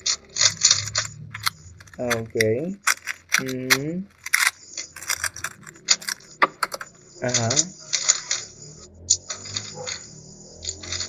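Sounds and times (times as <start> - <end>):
puzzle cube plastic clicks: 0.0 - 8.1.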